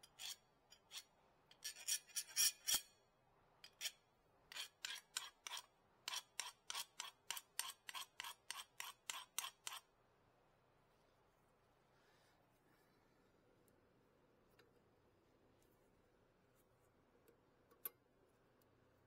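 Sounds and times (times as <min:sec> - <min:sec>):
hand file rasping on metal: 0:03.7 - 0:09.9.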